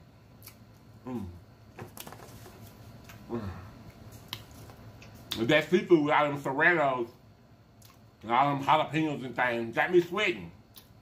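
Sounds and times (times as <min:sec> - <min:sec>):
man humming mmm: 0:01.0 - 0:01.4, 0:03.2 - 0:03.8
mouth clicks and smacks chewing: 0:03.9 - 0:05.4.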